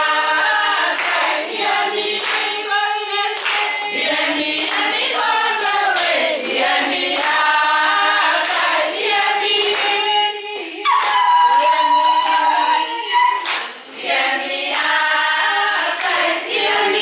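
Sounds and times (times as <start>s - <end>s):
group singing unaccompanied: 0.0s - 17.0s
hand clapping: 0.8s - 2.6s, 3.2s - 5.1s, 5.7s - 10.2s, 10.9s - 11.5s, 12.1s - 12.7s, 13.4s - 13.9s, 14.7s - 15.1s, 15.8s - 17.0s.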